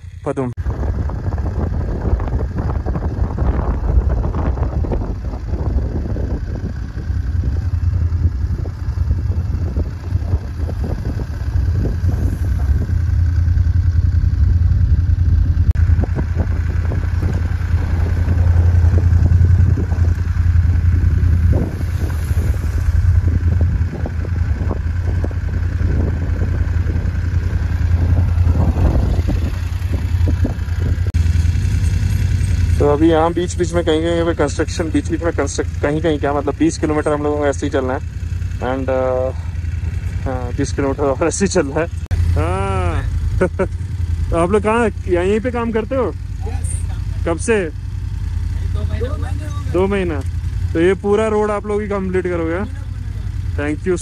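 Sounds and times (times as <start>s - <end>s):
motorcycle engine low hum: 0.0s - 54.0s.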